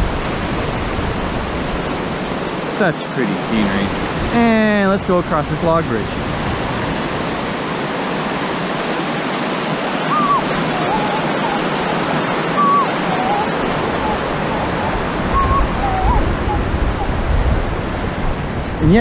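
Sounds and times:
high chirping tones: 10.0 - 17.2.

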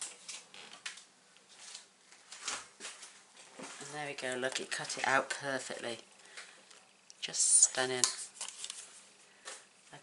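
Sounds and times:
paper crackling and rustling: 0.0 - 3.9, 8.3 - 9.1.

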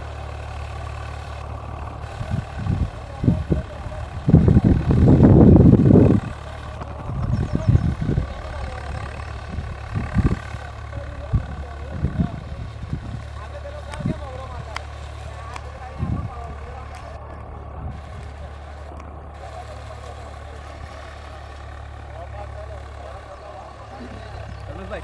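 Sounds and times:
tractor engine droning: 0.0 - 25.0.

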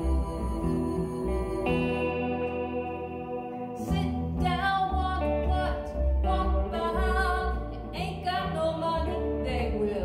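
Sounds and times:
acoustic bass guitar: 0.0 - 10.0
electric guitar: 0.0 - 10.0
person singing: 0.0 - 10.0.

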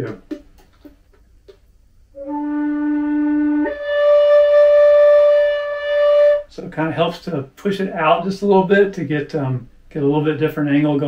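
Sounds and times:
flute playing held notes: 2.2 - 6.5.

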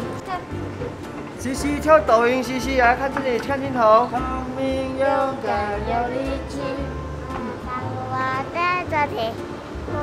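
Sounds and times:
backing music with steady bass: 0.0 - 10.0
child singing: 5.5 - 7.0, 7.6 - 10.0.

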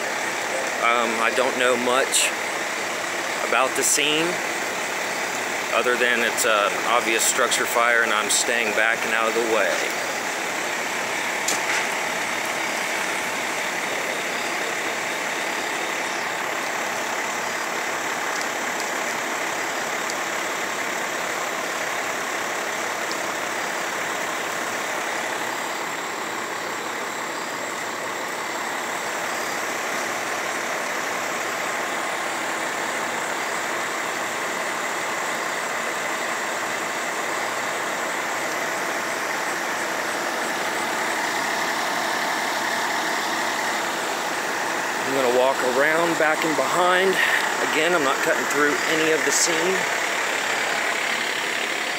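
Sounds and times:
diesel engines idling: 0.0 - 51.9.

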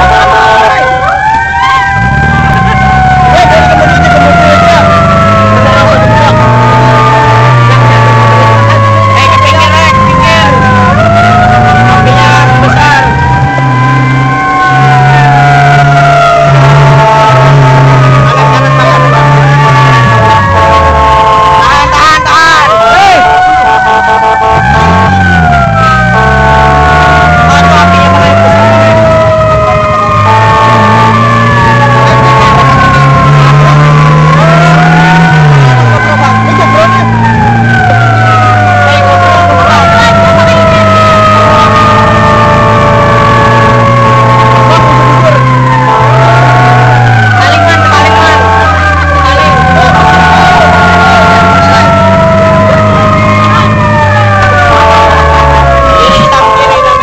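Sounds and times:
emergency sirens wailing: 0.0 - 57.0
two-tone siren: 0.0 - 57.0
vehicle engine revving: 0.0 - 57.0.

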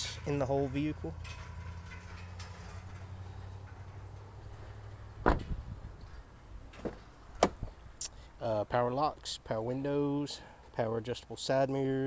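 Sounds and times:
car door slamming: 5.2 - 5.7, 6.8 - 7.8.

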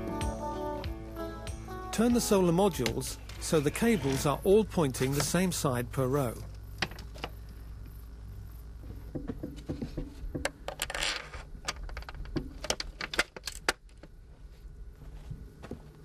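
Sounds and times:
metal frame scraping: 3.3 - 5.2.

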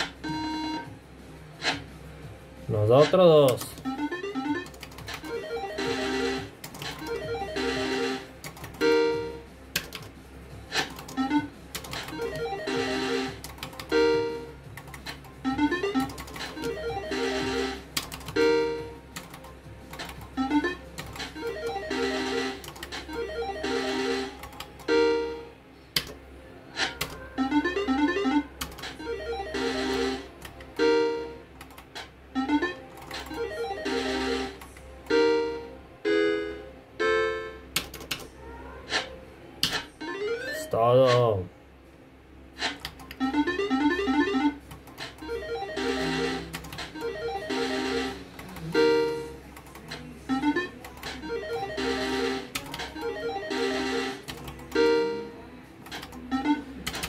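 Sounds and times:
slot machine tones and jingles: 0.0 - 0.9, 2.7 - 9.4, 10.7 - 25.5, 27.3 - 31.4, 32.3 - 37.7, 40.0 - 41.4, 42.6 - 49.4, 50.3 - 55.4, 56.2 - 56.7.

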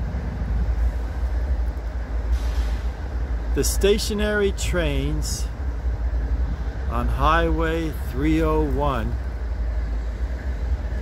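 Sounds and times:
road traffic rumble: 0.0 - 11.0
hiss: 2.3 - 3.0.

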